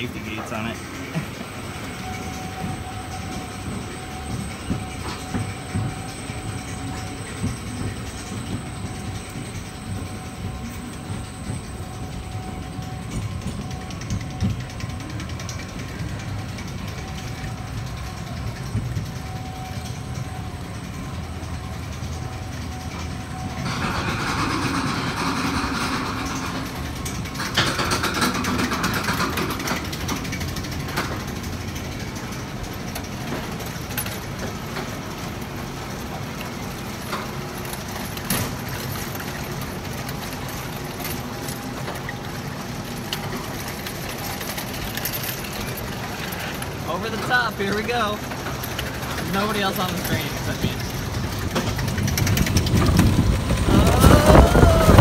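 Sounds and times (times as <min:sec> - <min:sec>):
roller coaster train rumble and clatter: 0:00.0 - 0:55.0.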